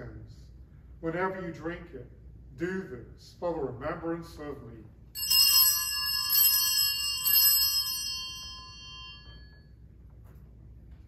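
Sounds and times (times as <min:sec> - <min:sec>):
altar bell ringing: 0:05.2 - 0:09.8.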